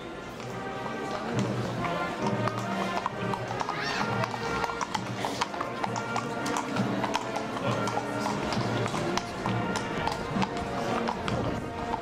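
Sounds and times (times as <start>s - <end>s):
horse hooves clip-clopping: 0.0s - 12.0s.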